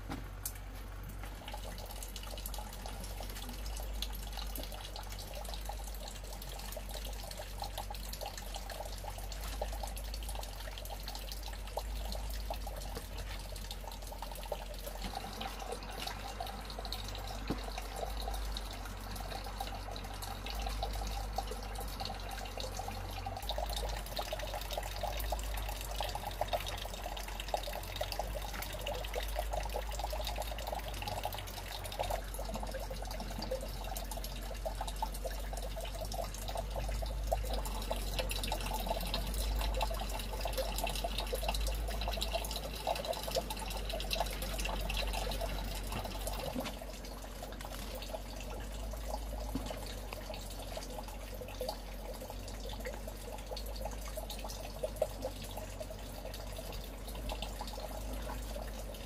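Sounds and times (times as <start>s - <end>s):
water running and trickling: 0.0s - 59.0s
small crackles: 45.6s - 51.0s.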